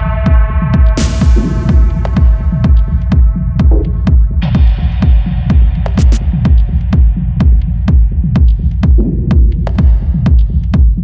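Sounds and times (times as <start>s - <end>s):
heavy kick drum: 0.0s - 11.0s.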